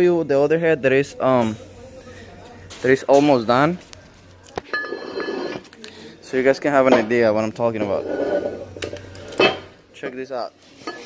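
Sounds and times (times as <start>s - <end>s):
parts scraping on workbench: 4.8s - 5.7s, 7.8s - 9.8s.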